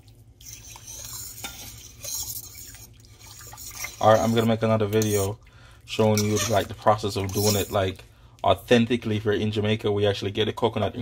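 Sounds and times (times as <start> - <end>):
spoon stirring liquid in pot: 0.0 - 8.1.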